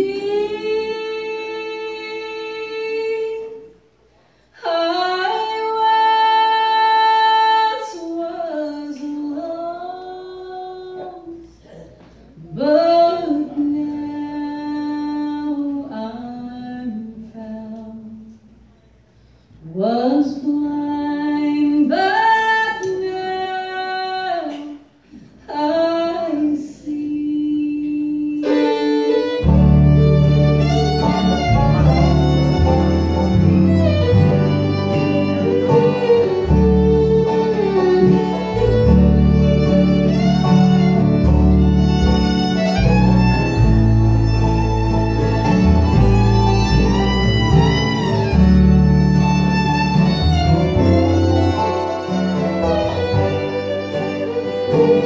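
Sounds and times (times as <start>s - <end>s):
woman singing gospel solo: 0.0s - 3.6s
woman singing unaccompanied: 0.0s - 3.8s, 4.6s - 11.4s, 12.4s - 18.3s, 19.6s - 24.8s, 25.5s - 29.6s
bluegrass band playing: 28.2s - 55.0s.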